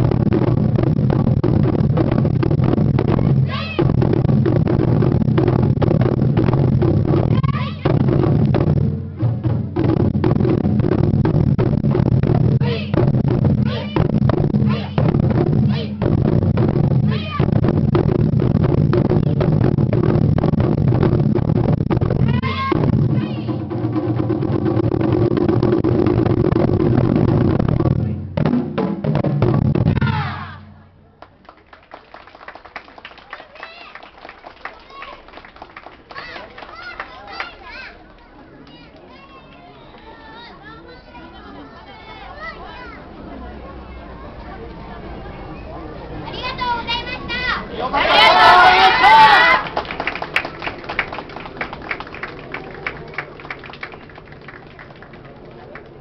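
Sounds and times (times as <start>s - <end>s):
taiko drums drumming fast: 0.0s - 30.4s
audience applause: 31.2s - 38.2s, 48.0s - 56.0s.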